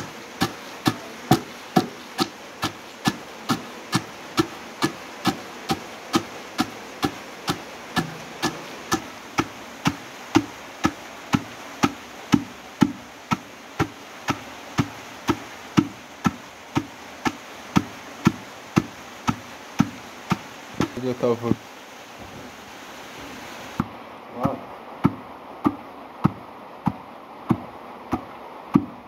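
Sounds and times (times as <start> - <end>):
pestle pounding in stone mortar: 0.0 - 21.0, 24.4 - 29.0.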